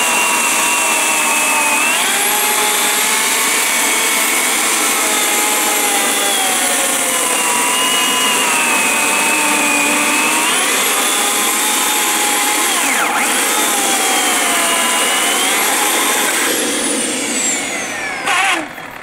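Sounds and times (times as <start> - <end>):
electric chainsaw cutting log: 0.0 - 19.0.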